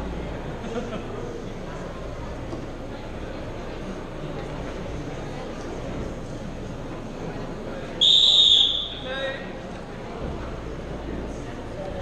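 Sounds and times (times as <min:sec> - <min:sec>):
crowd murmuring in hall: 0:00.0 - 0:12.0
referee whistle blast: 0:08.0 - 0:09.1.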